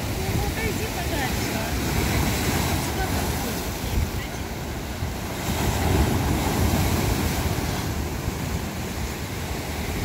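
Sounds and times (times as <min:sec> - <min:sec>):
sea waves breaking on rocks: 0:00.0 - 0:10.0
wind buffeting microphone: 0:00.0 - 0:10.0.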